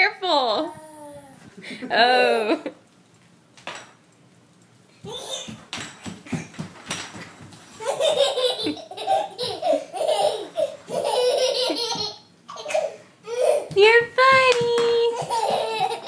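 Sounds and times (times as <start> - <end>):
toddler laughing with snorts: 7.8 - 13.7, 15.2 - 16.0.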